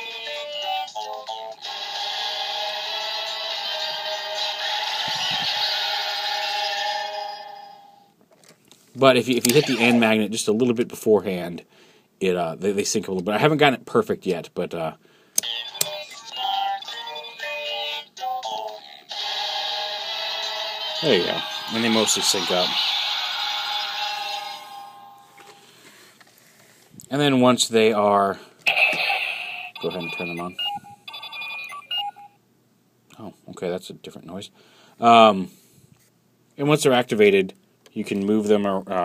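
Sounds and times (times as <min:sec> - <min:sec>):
toy electronic beeping: 0:09.5 - 0:10.0, 0:15.4 - 0:16.5, 0:28.7 - 0:32.4
toy switch clicks: 0:15.4 - 0:16.0.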